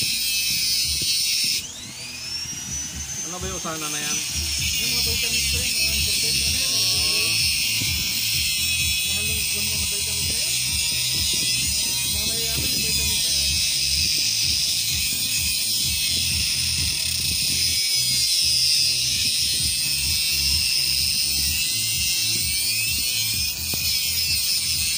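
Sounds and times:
background music with low beat: 0:00.0 - 0:24.9
grinder cutting steel: 0:00.0 - 0:24.9.

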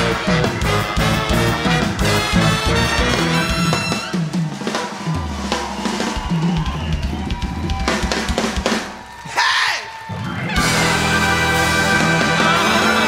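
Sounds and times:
band music with drum kit: 0:00.0 - 0:13.0.

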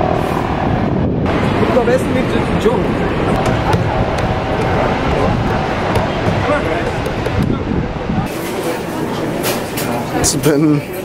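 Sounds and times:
many people talking: 0:01.3 - 0:11.0.

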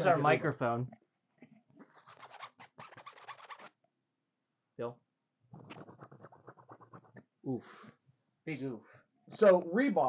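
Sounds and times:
fabric rubbing on microphone: 0:01.8 - 0:03.7.

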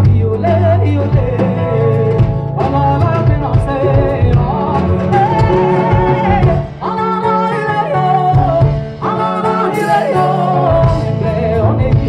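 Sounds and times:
bass: 0:00.0 - 0:12.0
drums: 0:00.0 - 0:12.0
electric guitar: 0:00.0 - 0:12.0
woman singing: 0:00.0 - 0:12.0.

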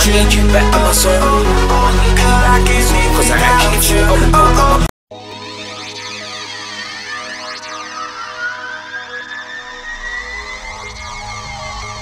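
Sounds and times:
deep bass line: 0:00.0 - 0:04.9
synthesizer chords: 0:00.0 - 0:12.0
synth tone rising in pitch: 0:05.1 - 0:12.0.

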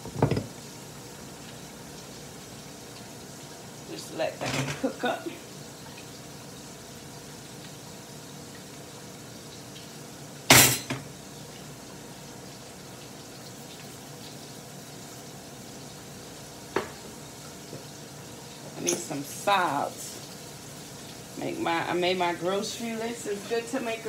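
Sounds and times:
kitchenware clanking: 0:04.2 - 0:05.2, 0:10.5 - 0:11.1, 0:16.7 - 0:17.1, 0:18.7 - 0:19.3.

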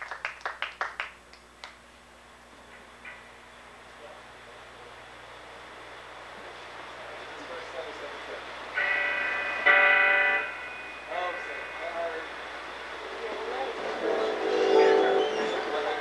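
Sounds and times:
keyboard notes: 0:13.0 - 0:16.0.

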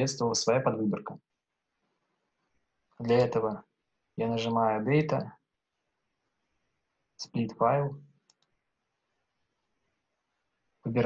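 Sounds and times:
computer mouse clicks: 0:08.2 - 0:08.6.

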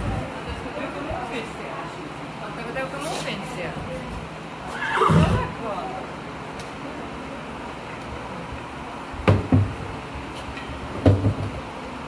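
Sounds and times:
box fan humming: 0:00.0 - 0:12.0
horse whinnying: 0:04.7 - 0:05.5.

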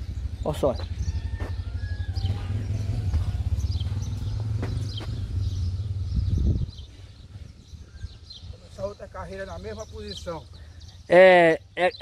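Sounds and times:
wind rumble on microphone: 0:00.0 - 0:10.2.

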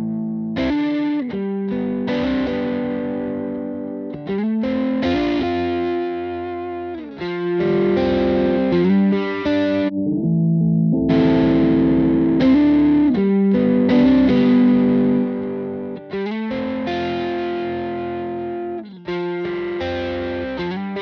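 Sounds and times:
distorted electric guitar chords: 0:00.0 - 0:21.0.

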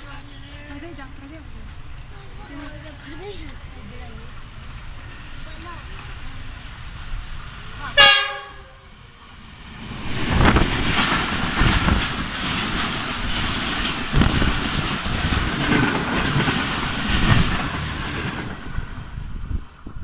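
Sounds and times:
train passing: 0:00.0 - 0:20.0
train wheels clattering on rails: 0:09.7 - 0:20.0.

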